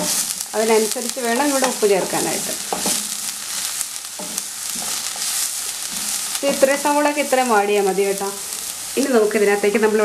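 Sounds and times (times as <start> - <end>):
spatula scraping a pan: 0.0 - 0.5, 1.3 - 7.3
onions sizzling in a pan: 0.0 - 10.0.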